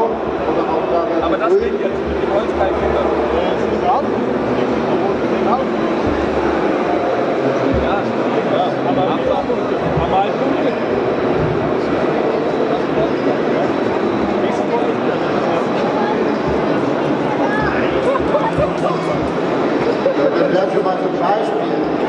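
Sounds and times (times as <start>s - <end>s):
crowd babble: 0.0s - 22.0s.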